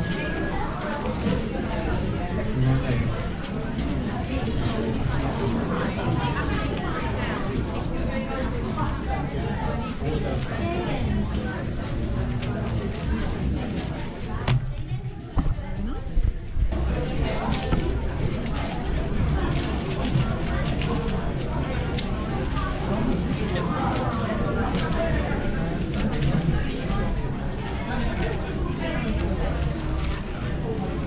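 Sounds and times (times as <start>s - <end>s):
chatter of many voices: 0.0s - 31.0s
speed cube clicking: 17.2s - 26.6s.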